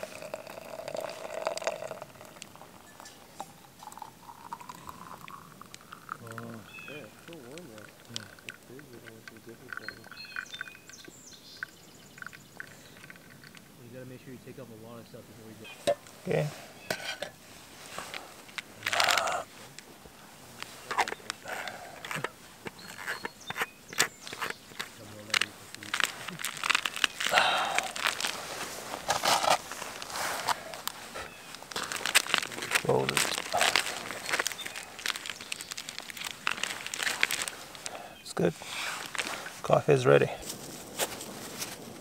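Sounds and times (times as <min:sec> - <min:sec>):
foil crinkling: 0:00.0 - 0:02.6, 0:20.5 - 0:38.1, 0:38.7 - 0:39.7
jacket fabric rustling: 0:24.9 - 0:37.9.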